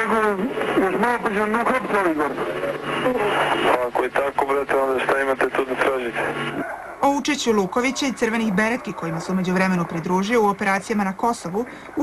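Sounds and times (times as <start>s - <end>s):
man speaking over telephone: 0.0s - 6.6s
low hum on phone line: 0.0s - 12.0s.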